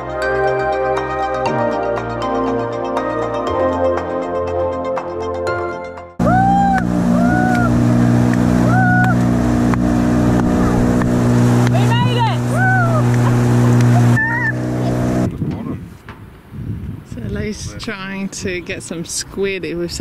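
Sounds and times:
people whooping: 6.2 - 7.9, 8.6 - 9.3, 12.5 - 14.6
outboard motor running: 6.2 - 15.6.

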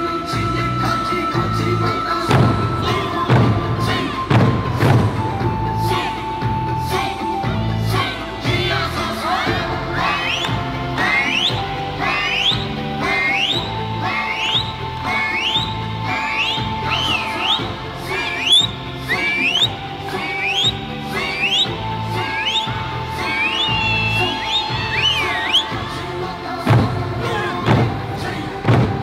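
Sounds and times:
accompanying tune: 0.0 - 29.0
barrel drums and hand drums: 0.1 - 26.0, 26.6 - 29.0
shrill rising whistle: 10.0 - 26.0.

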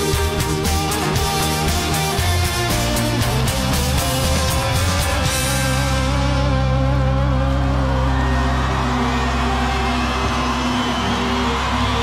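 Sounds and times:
held bass and guitar notes: 0.0 - 12.0.

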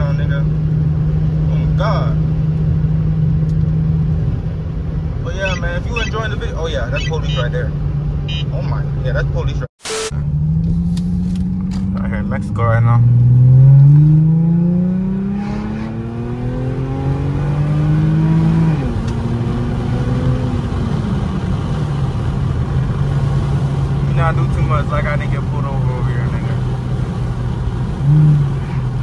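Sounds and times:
engine rev blip: 5.4 - 6.2, 6.9 - 7.5, 8.3 - 8.6, 9.8 - 10.8
car engine accelerating: 10.0 - 29.0.

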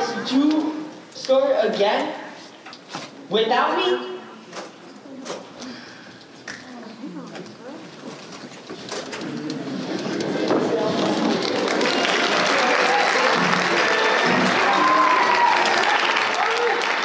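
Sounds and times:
audience applauding: 9.7 - 17.0.

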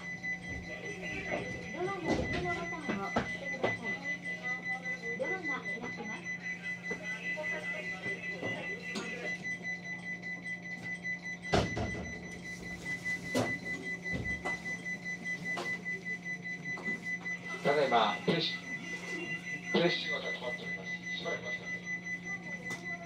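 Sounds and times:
faint voices: 0.0 - 10.8, 13.8 - 23.0.

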